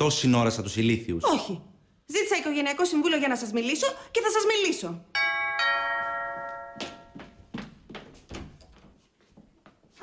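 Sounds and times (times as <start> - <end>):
two-note doorbell chime: 5.2 - 7.2.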